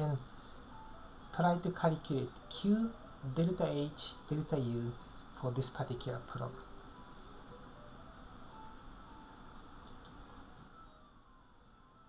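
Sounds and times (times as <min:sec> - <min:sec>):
computer mouse clicks: 0:09.8 - 0:10.2.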